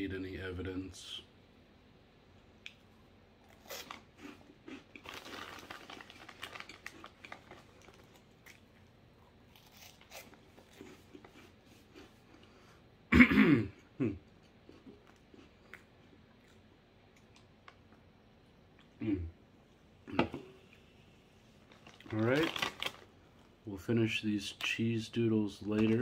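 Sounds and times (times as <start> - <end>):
crunching cheese puffs: 3.4 - 12.2, 21.6 - 23.2.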